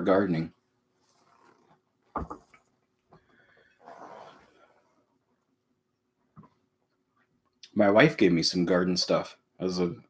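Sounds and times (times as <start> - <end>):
soft breathy noise: 3.1 - 5.2.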